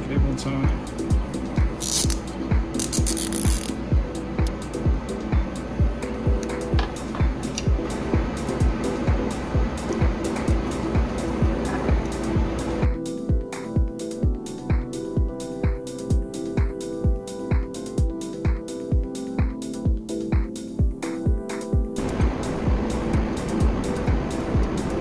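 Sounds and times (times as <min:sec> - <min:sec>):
electronic music with steady beat: 0:00.0 - 0:25.0
cable tie pulled tight: 0:01.8 - 0:02.2, 0:02.8 - 0:03.8.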